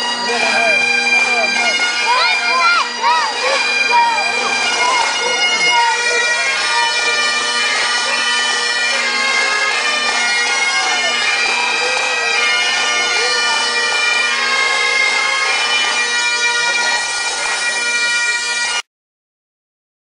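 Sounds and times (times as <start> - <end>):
bagpipes playing: 0.0 - 18.8.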